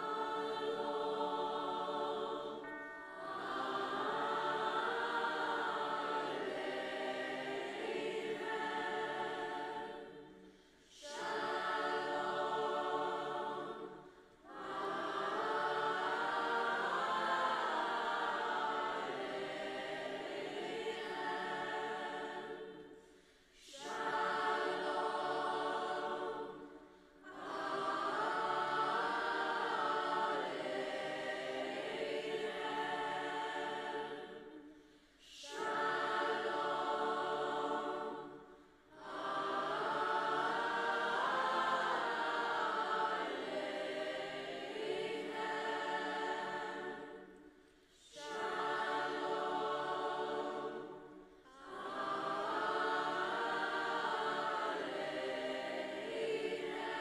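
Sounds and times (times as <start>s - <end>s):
choir of young voices singing: 0.0s - 57.0s.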